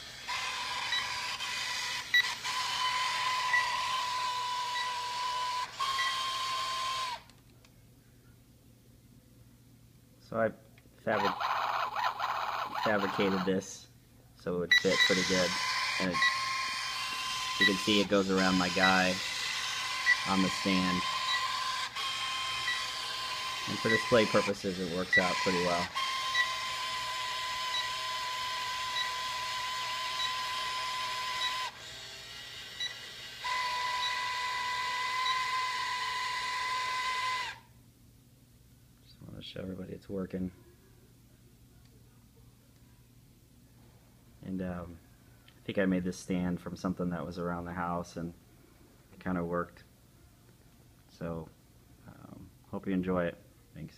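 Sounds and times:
toy electronic chirps: 0.4 - 7.1, 14.7 - 24.5, 32.8 - 35.6.

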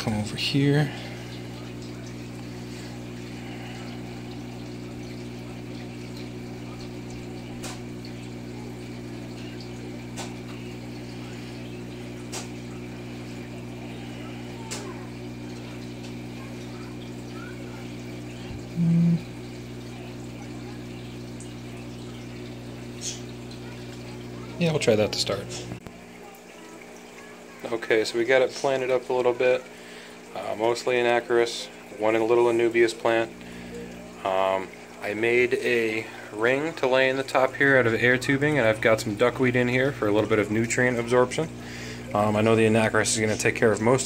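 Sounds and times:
aquarium air pump humming: 0.0 - 44.0
faint water bubbling: 0.0 - 44.0
brief low tone: 18.8 - 19.3.

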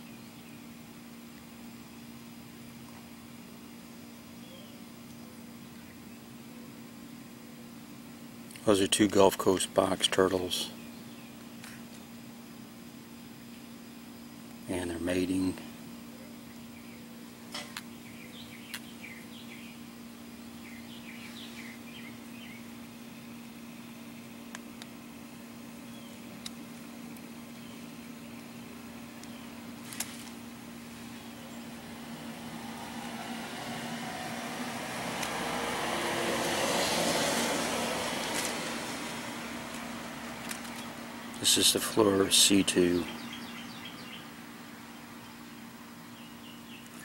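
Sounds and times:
steady low hum: 0.0 - 47.0
vehicle passing: 31.7 - 41.4
small clicks: 40.4 - 40.9.

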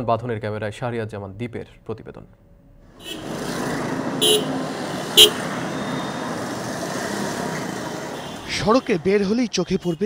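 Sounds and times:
road traffic of motorcycles and cars: 2.8 - 10.0
short horn toots: 4.2 - 6.2.

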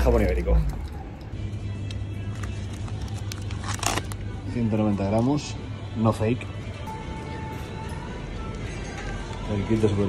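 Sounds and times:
background music with low bass: 0.0 - 10.0
plastic packet crinkling: 2.4 - 4.2.

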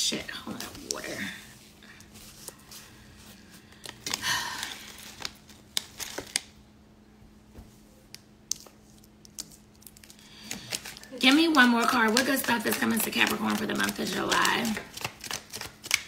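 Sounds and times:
cards rustling: 2.0 - 6.5, 8.5 - 16.0
cards snapping and clicking: 8.5 - 16.0.

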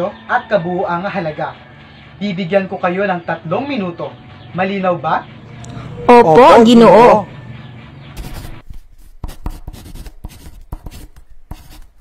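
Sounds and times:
pen scratching on paper: 8.2 - 12.0.

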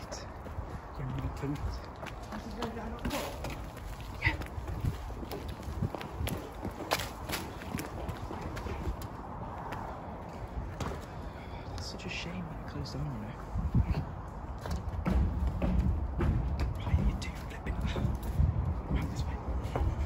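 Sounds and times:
hurried footsteps on concrete steps: 0.0 - 20.0.

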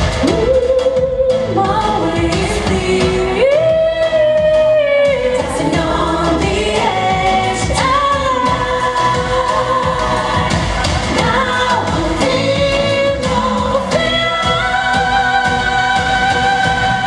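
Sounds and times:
musical accompaniment: 0.0 - 17.0
woman singing into microphone: 0.2 - 17.0.

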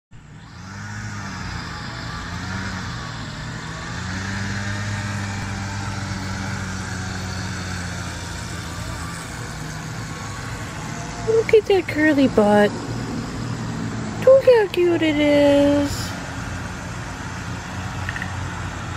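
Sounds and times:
low motor drone: 0.1 - 18.9.

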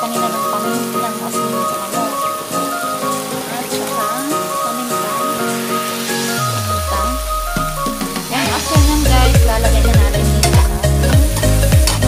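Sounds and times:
background music: 0.0 - 12.0
vegetables sizzling in pan: 0.0 - 12.0.

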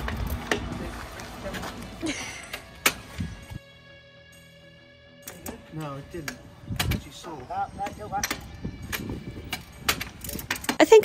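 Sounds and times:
soft music: 0.2 - 11.0.

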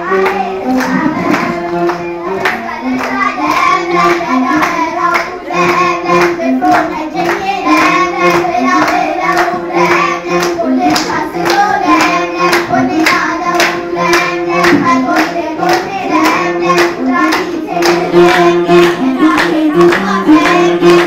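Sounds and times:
children singing: 0.0 - 21.0
drum beating: 0.1 - 21.0
hand clapping: 0.1 - 21.0.

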